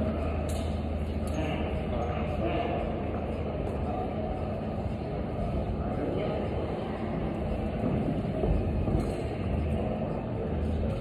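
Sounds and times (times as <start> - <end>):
low rumble in gym hall: 0.0 - 11.0.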